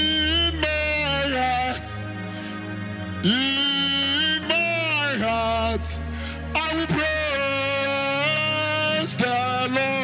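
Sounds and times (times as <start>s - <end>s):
man singing a long high note: 0.0s - 2.1s, 3.2s - 10.0s
sustained keyboard accompaniment: 0.0s - 10.0s.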